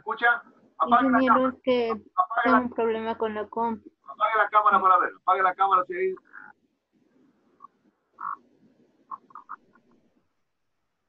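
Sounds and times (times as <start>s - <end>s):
garbled voice over video call: 0.0s - 6.5s.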